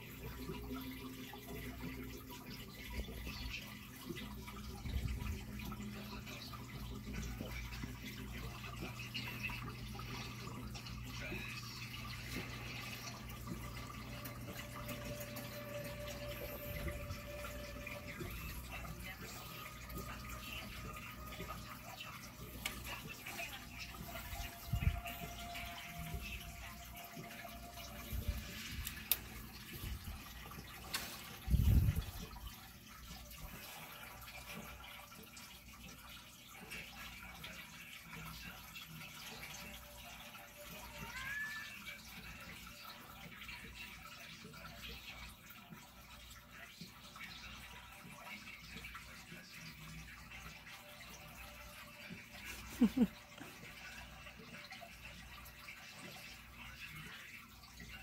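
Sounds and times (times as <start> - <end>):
aquarium air stone bubbling: 0.0 - 58.0.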